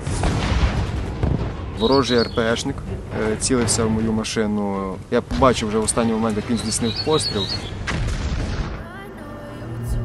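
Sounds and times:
explosion blasts: 0.0s - 8.9s
background music: 0.0s - 10.0s.

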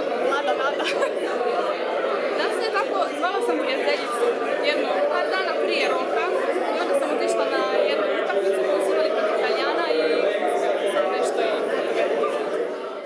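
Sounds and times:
babble of overlapping voices: 0.0s - 13.0s.

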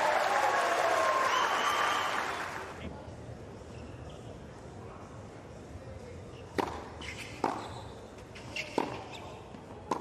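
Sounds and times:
racket striking tennis ball: 6.6s - 7.7s, 8.4s - 9.1s.

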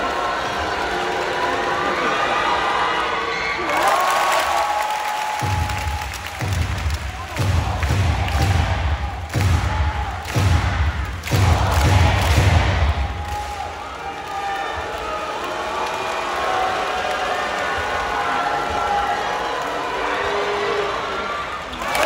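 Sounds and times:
crowd cheering and chanting: 0.0s - 22.0s.

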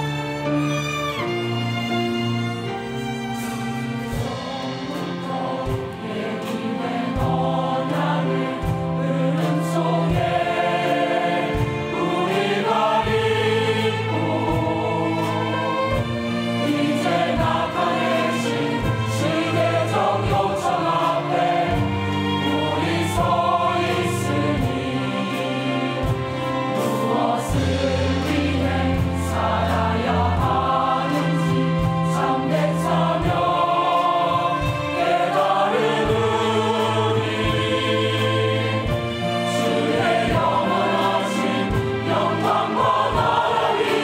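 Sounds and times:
choir singing a hymn: 0.0s - 44.0s
violins: 0.0s - 44.0s.

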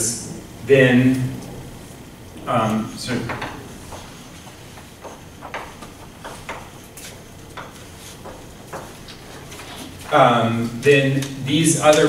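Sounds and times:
chalk tapping and scratching on blackboard: 2.7s - 10.1s.

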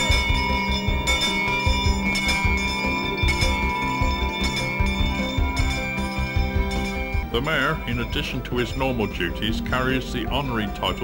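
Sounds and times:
handbell ringing: 0.0s - 11.0s.

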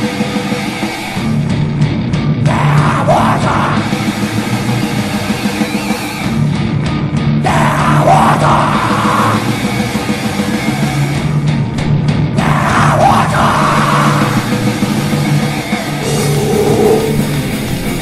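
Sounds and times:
harsh shouted vocals: 7.5s - 9.4s, 12.4s - 14.4s.

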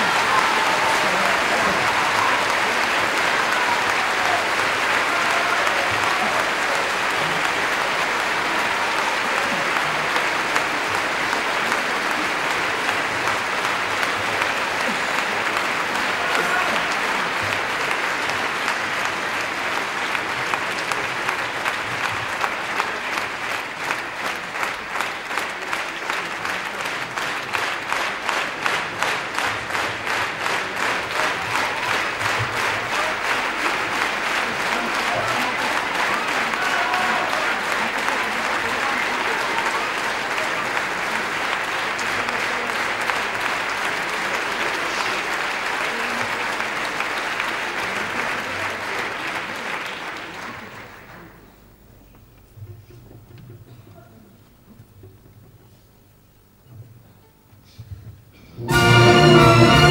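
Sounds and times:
rhythmic clapping in unison: 0.0s - 51.3s
audience applauding: 0.0s - 55.5s, 58.6s - 59.9s.

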